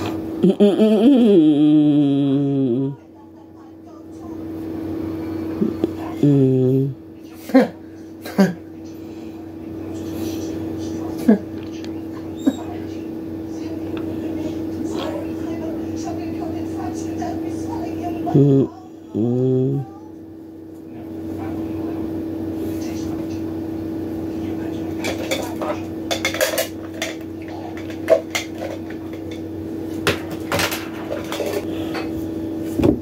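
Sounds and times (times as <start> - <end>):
steady hum: 0.0 - 3.2, 3.8 - 33.0
dishes and cutlery clinking: 25.0 - 29.4, 30.1 - 32.2.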